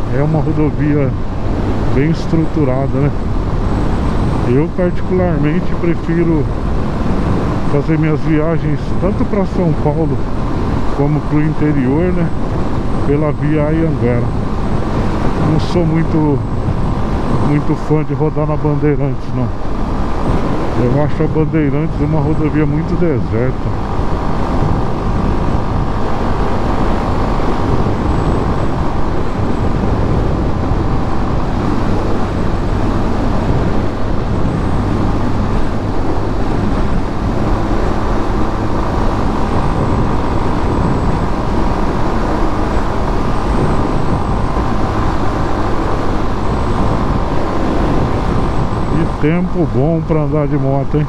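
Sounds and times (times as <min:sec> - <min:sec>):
motorcycle engine cruising: 0:00.0 - 0:50.9
wind rushing on microphone: 0:00.0 - 0:51.0.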